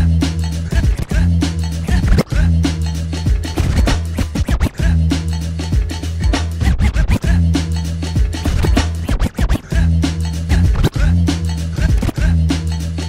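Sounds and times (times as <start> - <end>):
hip hop beat with bass: 0.0 - 13.0
vinyl scratching: 0.0 - 13.0.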